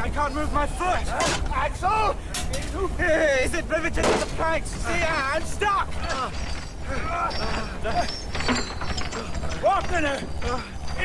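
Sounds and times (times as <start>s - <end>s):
constant low rumble: 0.0s - 11.0s
mechanical creaking and clicking: 3.8s - 11.0s.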